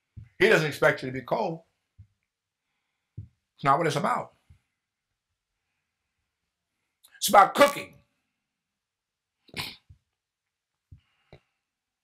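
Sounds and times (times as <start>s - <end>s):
person coughing: 9.5s - 10.0s.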